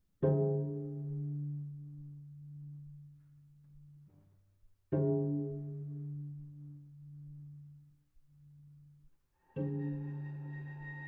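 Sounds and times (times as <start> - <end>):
cello bowing low note: 9.5 - 11.0.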